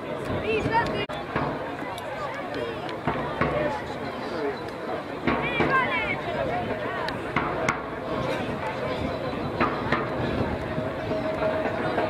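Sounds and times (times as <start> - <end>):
players shouting and calling: 0.0 - 12.0.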